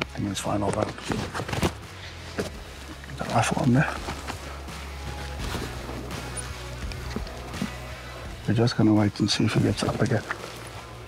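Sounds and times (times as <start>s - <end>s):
music with low sustained tones: 0.0s - 11.0s.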